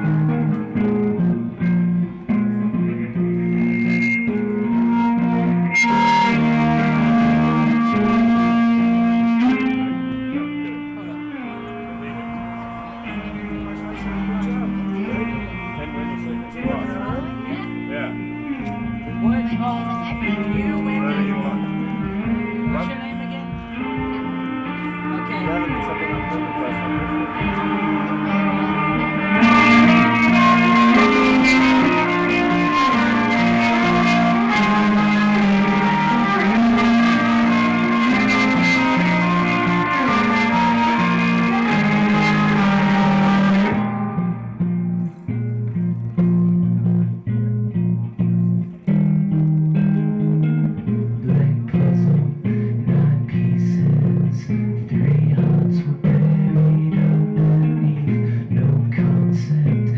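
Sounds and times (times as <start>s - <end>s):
live rock band playing: 0.0s - 59.6s
bass guitar: 0.0s - 59.9s
electric guitar: 0.0s - 59.9s.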